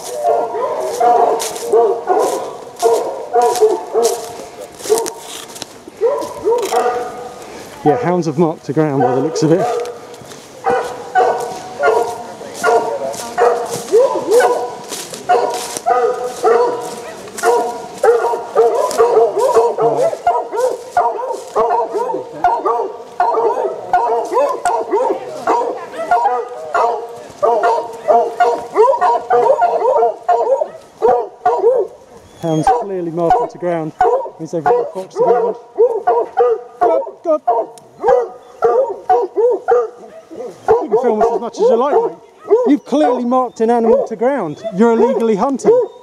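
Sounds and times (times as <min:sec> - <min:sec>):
pack of hounds baying: 0:00.0 - 0:46.0.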